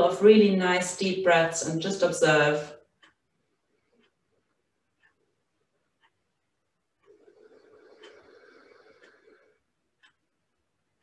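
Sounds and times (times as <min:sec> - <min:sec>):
slow deep breath: 0:07.2 - 0:09.6.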